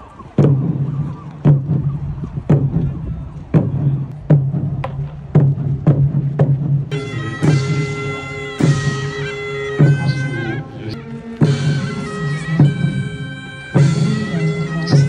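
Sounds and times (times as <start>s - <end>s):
large drum beats: 0.0s - 15.0s
shrill reedy wind instrument: 6.9s - 15.0s.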